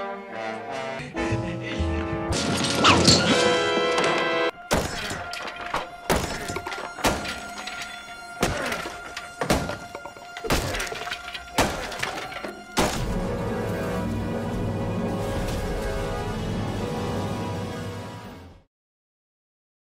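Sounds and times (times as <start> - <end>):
orchestral music: 0.0 - 18.7.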